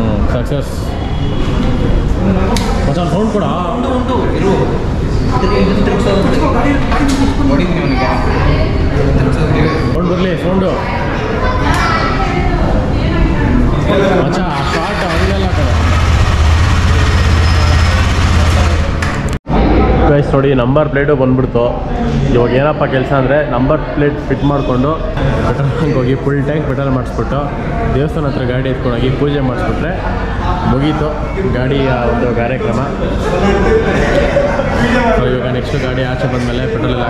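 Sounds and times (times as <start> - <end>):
people talking: 0.0 - 37.0
motorcycle engine idling: 14.6 - 19.0.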